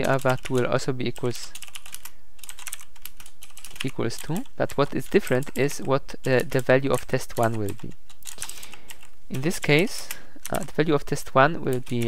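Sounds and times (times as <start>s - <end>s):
keyboard typing: 0.0s - 12.0s.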